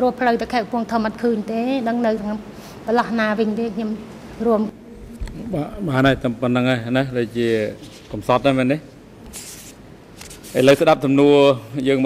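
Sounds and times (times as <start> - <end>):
woman speaking: 0.0 - 4.8
man speaking: 5.4 - 8.9, 10.5 - 12.0.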